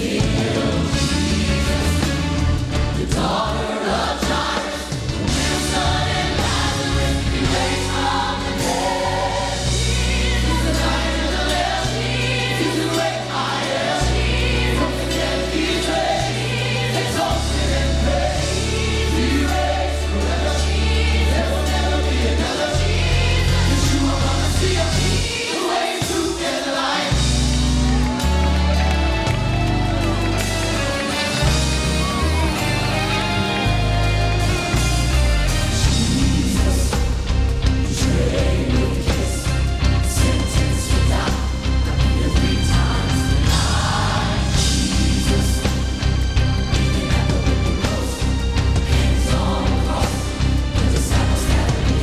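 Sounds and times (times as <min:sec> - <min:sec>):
gospel choir singing: 0:00.0 - 0:52.0
live band accompaniment: 0:00.0 - 0:52.0.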